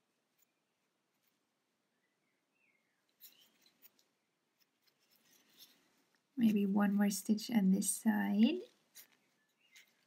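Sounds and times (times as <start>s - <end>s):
yarn rustling through fabric: 0.0s - 1.7s, 3.0s - 10.0s.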